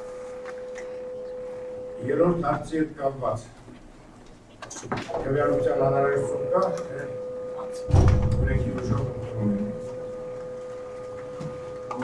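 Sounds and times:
high-pitched electrical hum: 0:00.0 - 0:12.0.

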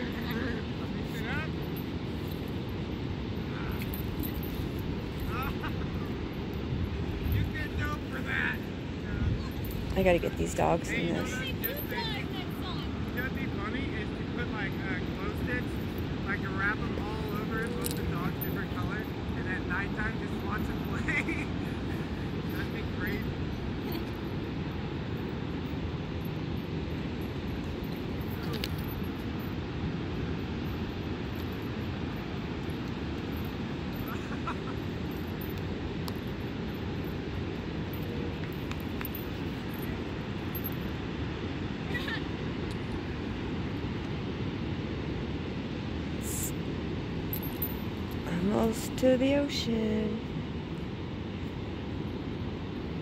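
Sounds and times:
ocean surf rumble: 0:00.0 - 0:53.0
wind on microphone: 0:04.5 - 0:14.4.

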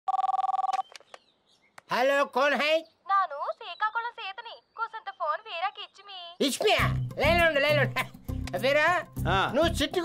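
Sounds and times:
telephone ringing two-tone trill: 0:00.1 - 0:00.8.

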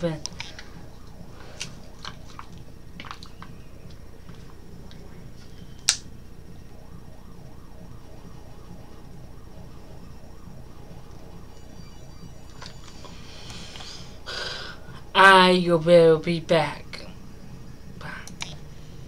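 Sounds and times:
low background hum: 0:00.0 - 0:19.0
sharp click: 0:05.8 - 0:06.1.

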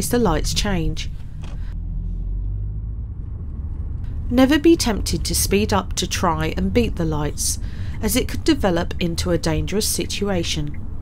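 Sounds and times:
car driving on road: 0:00.0 - 0:11.0.

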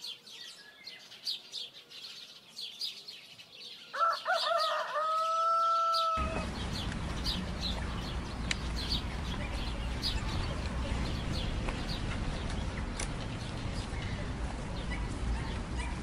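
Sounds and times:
small birds chirping: 0:00.0 - 0:16.0
rooster crowing: 0:03.9 - 0:06.5
steady background noise: 0:06.1 - 0:16.0.

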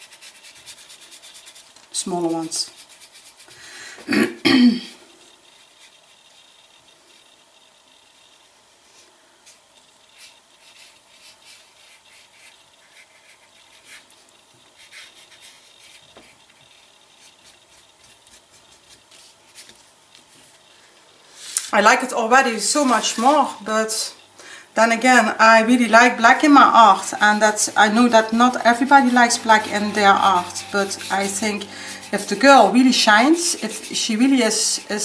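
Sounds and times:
person clearing her throat: 0:04.0 - 0:05.0
paintbrush dabbing on paper: 0:10.1 - 0:20.4, 0:25.1 - 0:35.0.

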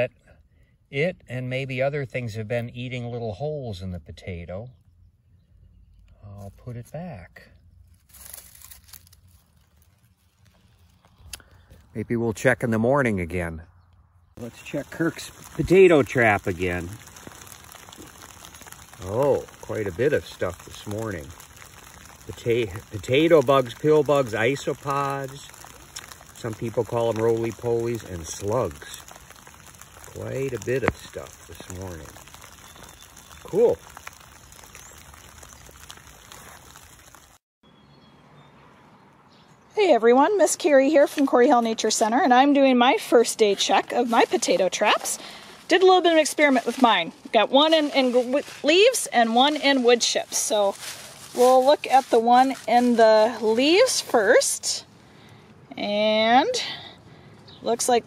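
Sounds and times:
dry leaves rustling and crunching: 0:07.7 - 0:11.2, 0:14.4 - 0:37.4, 0:40.6 - 0:54.8.

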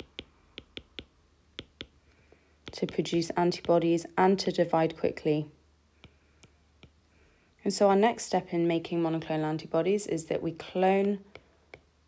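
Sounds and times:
stylus tapping on glass screen: 0:00.0 - 0:02.0, 0:06.0 - 0:07.0.

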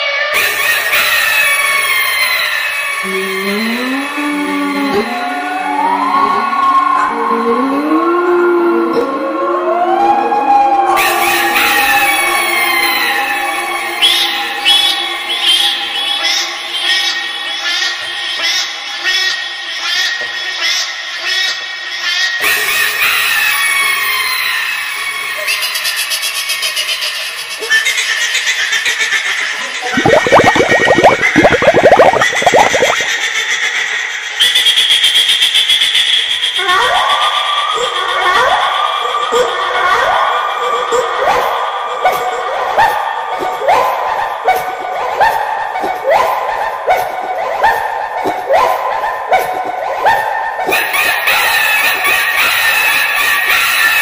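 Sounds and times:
echoing gliding electronic tones: 0:30.0 - 0:33.1
short bright electronic bursts: 0:30.0 - 0:33.1.

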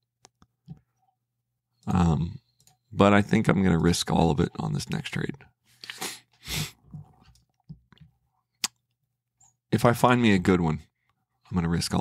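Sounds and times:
faint small noises: 0:00.0 - 0:09.8.

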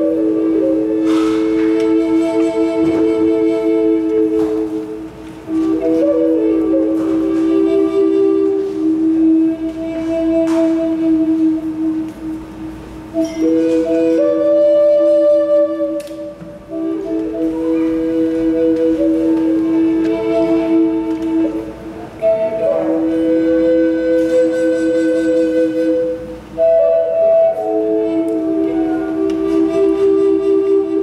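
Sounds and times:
harmonica playing: 0:00.0 - 0:31.0.

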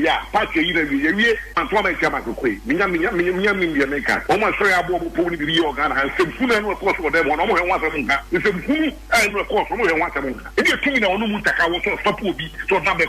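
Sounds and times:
person talking over radio: 0:00.0 - 0:13.0.

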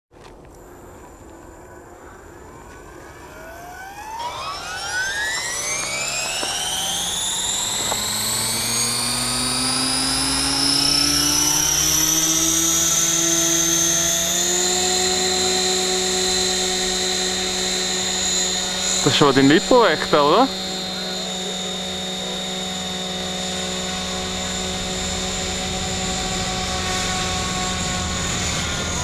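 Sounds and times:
model helicopter motor whine: 0:00.5 - 0:29.0.

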